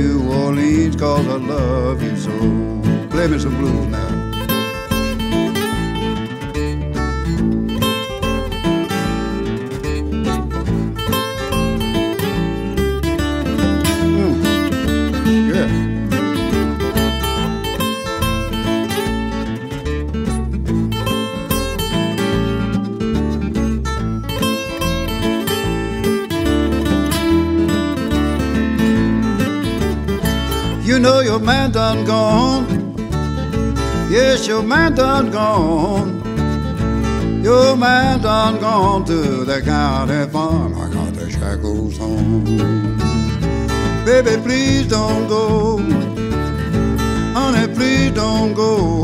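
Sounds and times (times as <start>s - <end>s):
picked acoustic guitar lead: 0.0s - 49.0s
walking bass line: 0.0s - 49.0s.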